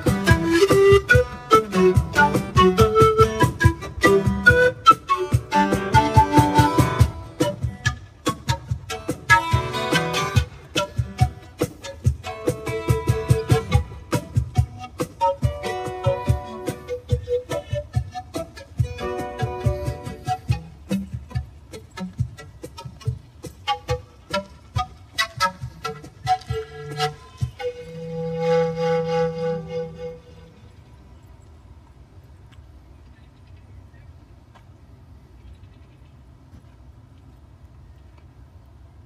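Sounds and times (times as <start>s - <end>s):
strummed acoustic guitar: 0.0s - 26.0s
hand percussion: 0.0s - 27.7s
pan flute melody: 0.0s - 31.2s
faint outdoor background: 0.0s - 39.0s.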